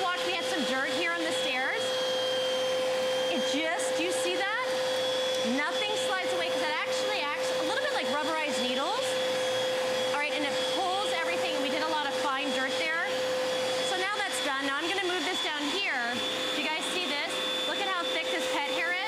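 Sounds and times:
vacuum cleaner motor whine: 0.0 - 19.0.

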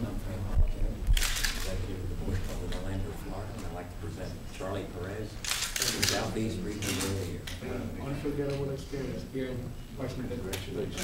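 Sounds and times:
camera shutter clicks: 5.4 - 7.2.

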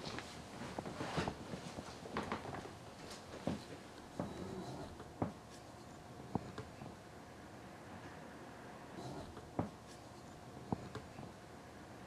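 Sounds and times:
faint rustling: 0.0 - 7.0.

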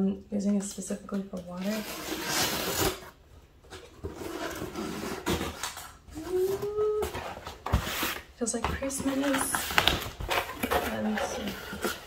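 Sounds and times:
packing tape ripping: 2.0 - 3.1.

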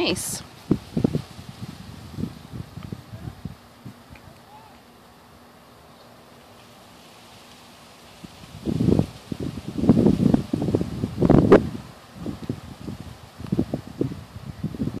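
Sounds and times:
wind buffeting microphone: 0.0 - 4.5, 8.1 - 15.0.

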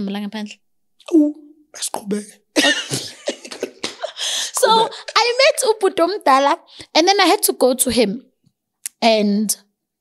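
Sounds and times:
women laughing hard: 2.6 - 5.2.

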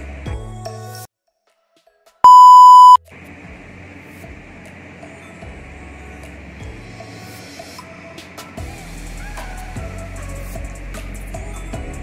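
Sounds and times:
loud electronic beep: 2.3 - 3.0.

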